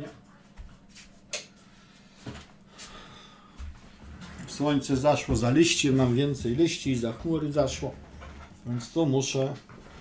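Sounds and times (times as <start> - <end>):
low steady hum: 0.0 - 10.0
knocks and thumps of movement: 3.6 - 8.6.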